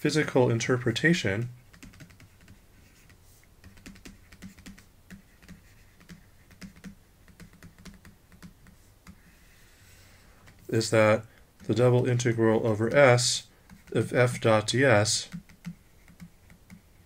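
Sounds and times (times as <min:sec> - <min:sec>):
stylus tapping on pen tablet: 0:01.7 - 0:09.2, 0:13.6 - 0:14.1, 0:15.3 - 0:16.9.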